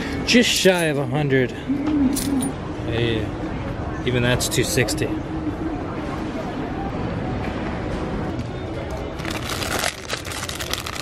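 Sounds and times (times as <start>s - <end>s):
plastic packaging crinkling: 9.2s - 11.0s.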